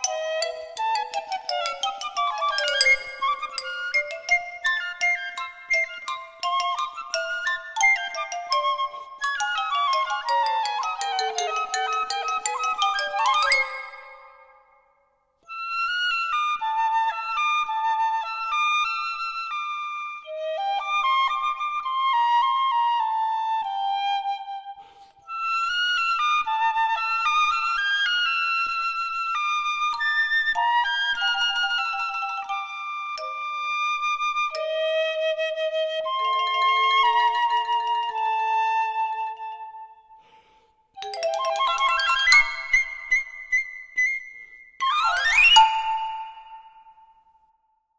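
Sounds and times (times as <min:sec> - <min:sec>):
xylophone notes: 0:00.0 - 0:14.6, 0:36.2 - 0:37.9, 0:41.0 - 0:43.4, 0:44.9 - 0:47.0
piccolo melody: 0:00.0 - 0:19.2, 0:29.4 - 0:47.5
piccolo high notes: 0:36.0 - 0:38.5, 0:41.0 - 0:44.2.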